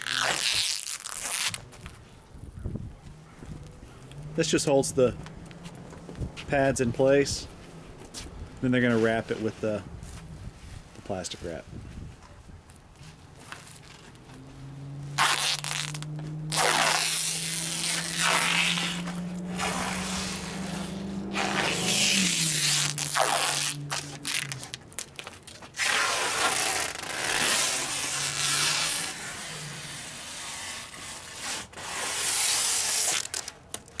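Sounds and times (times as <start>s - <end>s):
plastic wrap tearing off roll: 0.0s - 2.0s, 15.2s - 34.0s.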